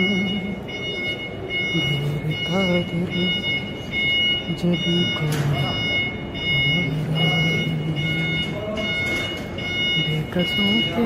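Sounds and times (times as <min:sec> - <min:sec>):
man singing: 0:00.0 - 0:00.7, 0:01.7 - 0:03.4, 0:04.5 - 0:05.9, 0:06.5 - 0:08.9.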